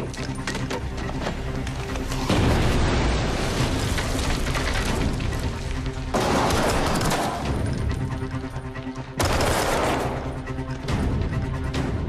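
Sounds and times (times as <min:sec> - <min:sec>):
film score: 0:00.0 - 0:12.0.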